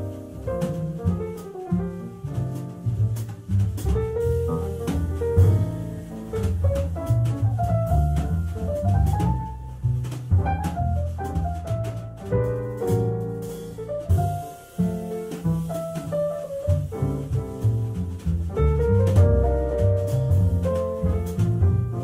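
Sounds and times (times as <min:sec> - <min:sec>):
acoustic piano: 0:00.0 - 0:22.0
double bass: 0:00.0 - 0:22.0
drums and cymbals: 0:00.0 - 0:22.0.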